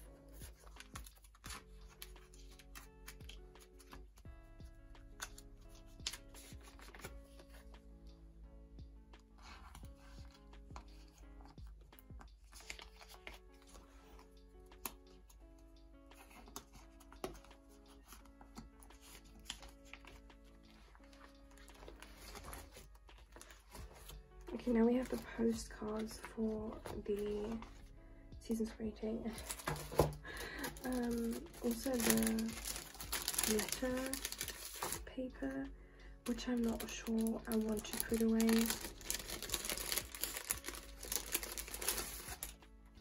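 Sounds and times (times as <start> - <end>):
soft instrumental music: 0.0 - 43.0
plastic sleeves rustling and clicking: 6.0 - 7.6, 12.2 - 15.4, 16.1 - 27.8, 29.3 - 35.1, 36.2 - 42.7.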